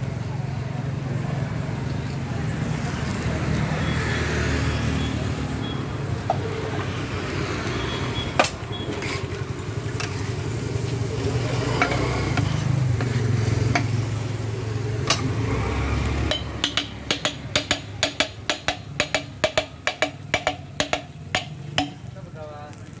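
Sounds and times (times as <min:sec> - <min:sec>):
road traffic rumble: 0:00.0 - 0:23.0
frying on griddle: 0:06.4 - 0:23.0
metal spatula striking griddle: 0:11.8 - 0:14.2, 0:15.0 - 0:15.4, 0:16.2 - 0:22.1
scattered knocks: 0:16.2 - 0:22.0.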